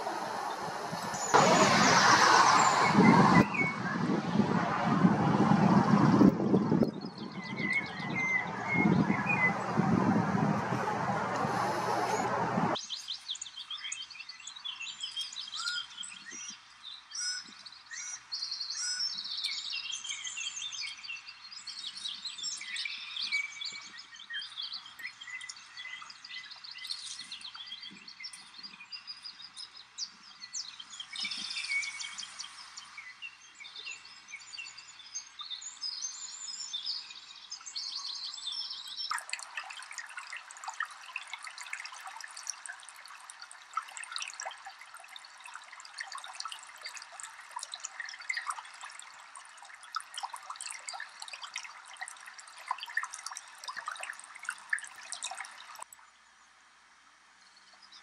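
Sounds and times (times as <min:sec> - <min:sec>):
running water rushing: 0:00.0 - 0:12.8, 0:38.9 - 0:56.0
songbirds chirping and singing: 0:06.5 - 0:40.6.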